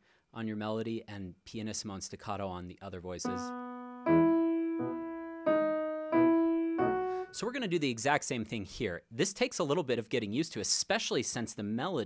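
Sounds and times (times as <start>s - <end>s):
grand piano playing chords: 3.3s - 7.4s.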